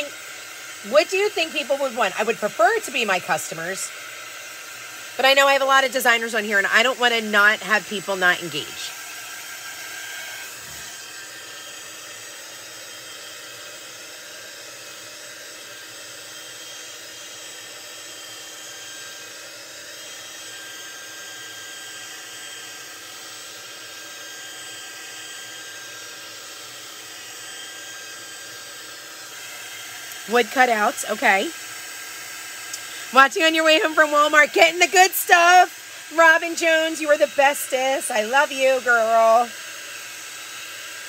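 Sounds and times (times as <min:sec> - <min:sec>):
heat gun fan blowing: 0:00.0 - 0:41.0.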